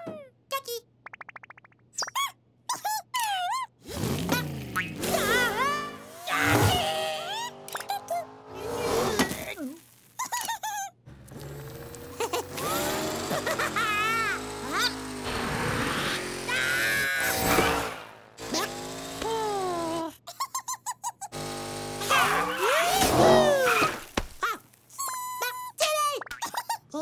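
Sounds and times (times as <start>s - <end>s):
comic sound effects: 4.4s - 9.6s, 12.2s - 18.7s
rapid stutter of pulses: 11.1s - 19.2s.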